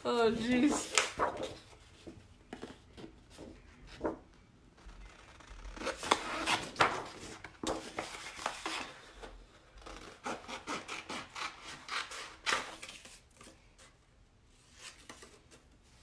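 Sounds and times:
paper rustling: 0.1 - 9.0.

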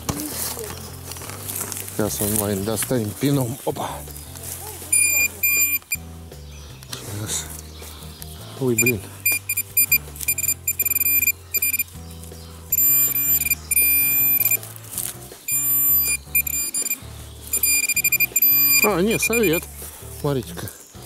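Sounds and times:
background music with bass: 0.0 - 21.0
pinpointer beeping: 4.9 - 6.0, 8.8 - 11.9, 12.7 - 14.6, 15.5 - 19.6.

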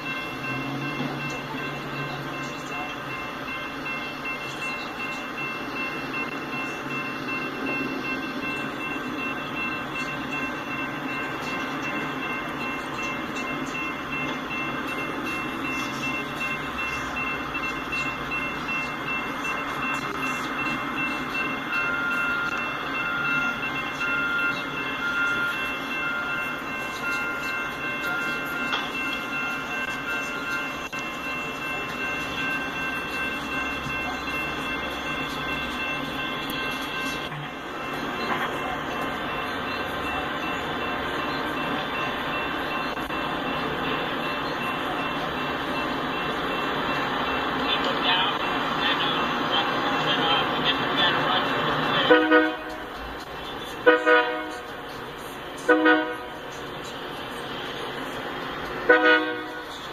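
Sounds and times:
short beeps: 0.0 - 54.8
crossing warning bell ringing: 0.0 - 59.9
rumbling of vehicles: 0.0 - 59.9.

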